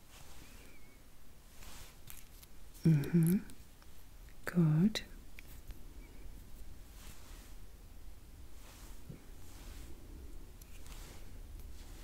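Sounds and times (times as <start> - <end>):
woman humming: 2.8 - 3.6.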